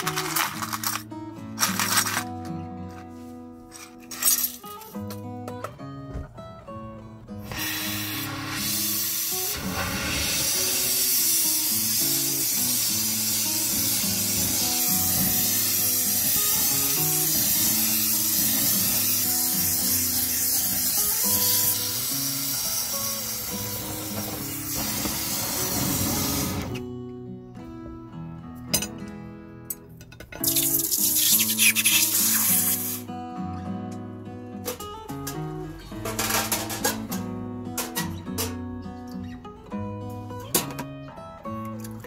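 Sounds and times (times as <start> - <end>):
background music: 0.0 - 42.0
gas torch flame hissing: 7.4 - 26.8, 30.5 - 33.1.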